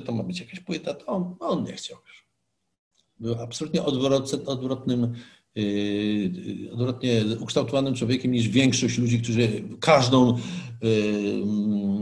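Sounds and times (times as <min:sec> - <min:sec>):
man talking: 0:00.0 - 0:02.2, 0:03.2 - 0:12.0.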